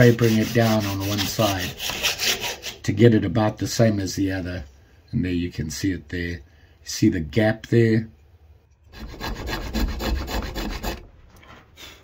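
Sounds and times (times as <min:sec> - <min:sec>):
file rasping on knife: 0:00.0 - 0:02.9, 0:08.9 - 0:11.0.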